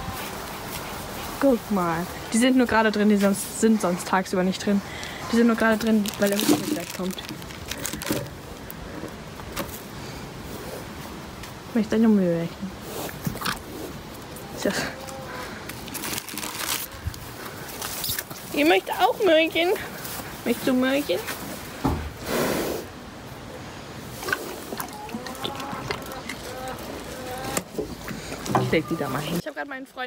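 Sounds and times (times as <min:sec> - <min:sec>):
plastic bag crinkling: 0:05.5 - 0:08.8, 0:15.7 - 0:17.2.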